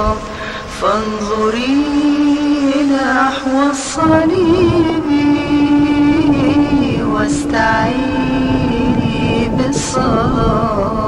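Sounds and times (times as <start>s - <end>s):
person singing a hymn: 0.0s - 11.0s.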